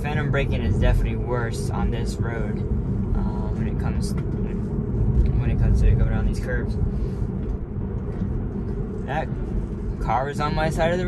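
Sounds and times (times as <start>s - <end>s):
road and tyre noise in car cabin: 0.0s - 11.0s.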